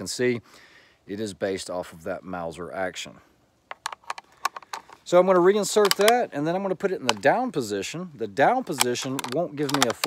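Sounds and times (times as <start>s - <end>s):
rifle bolt metallic clicks: 5.7s - 6.3s, 8.6s - 10.0s.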